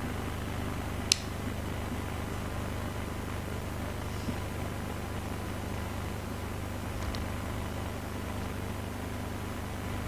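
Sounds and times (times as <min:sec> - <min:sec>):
sharp click: 0:01.1 - 0:01.4.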